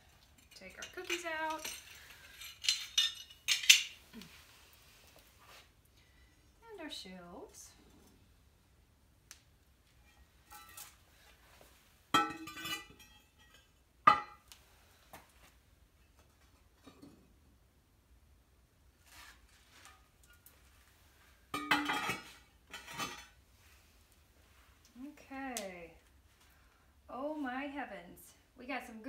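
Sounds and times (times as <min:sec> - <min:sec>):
ceramic pieces clinking and knocking: 0:00.3 - 0:04.0, 0:12.2 - 0:14.4, 0:21.6 - 0:23.3.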